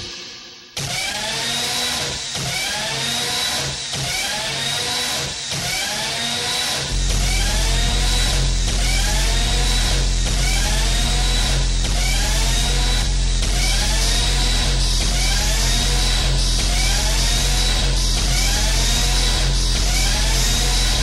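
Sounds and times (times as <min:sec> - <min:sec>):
fast kick drum: 0:06.9 - 0:21.0.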